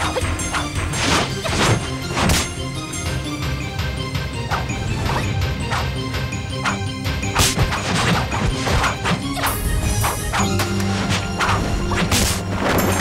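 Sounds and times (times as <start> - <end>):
fight hits swishes and crashes: 0.0 - 2.6, 6.6 - 13.0
background music: 0.0 - 13.0.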